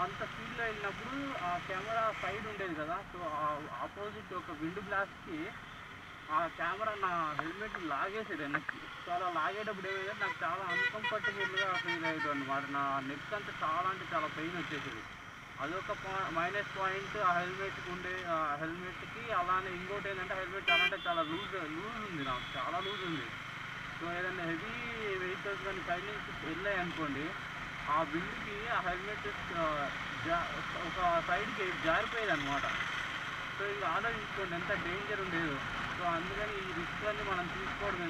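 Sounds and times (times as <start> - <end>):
man talking: 0.0 - 5.6, 6.3 - 15.0, 15.6 - 23.3, 24.0 - 32.8, 33.6 - 38.0
motorcycle riding at road speed: 0.0 - 38.0.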